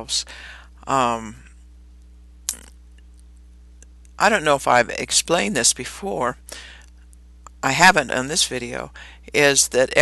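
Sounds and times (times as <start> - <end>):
low recording hum: 0.0 - 10.0.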